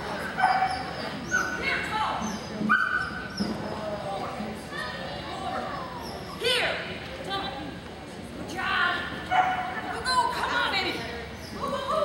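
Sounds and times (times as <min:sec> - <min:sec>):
dog barking: 0:09.3 - 0:09.7.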